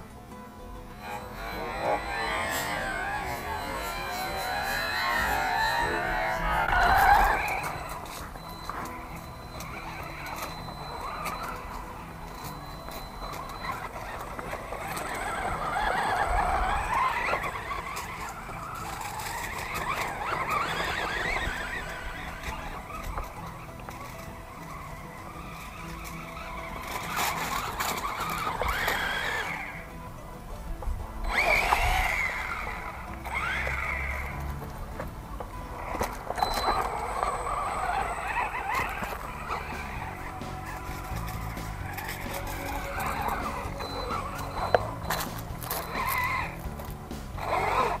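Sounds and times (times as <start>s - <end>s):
background music: 0.0s - 48.0s
electric motor whining: 0.0s - 48.0s
tyres on loose dirt: 0.0s - 48.0s.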